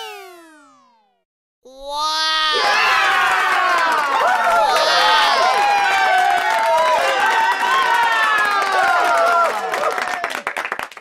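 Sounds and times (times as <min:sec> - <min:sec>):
children cheering and shouting: 0:01.7 - 0:10.0.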